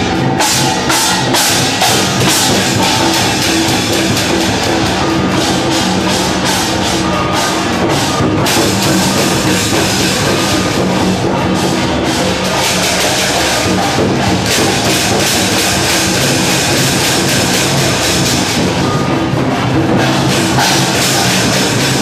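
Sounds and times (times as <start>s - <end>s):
loud drum percussion music: 0.0s - 22.0s.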